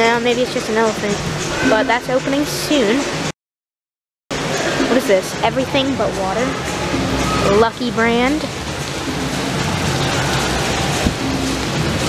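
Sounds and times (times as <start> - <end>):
fountain water splashing: 4.5 - 12.0.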